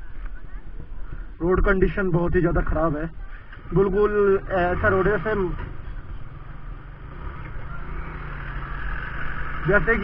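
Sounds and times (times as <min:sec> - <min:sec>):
motorcycle engine running: 0:04.2 - 0:10.0.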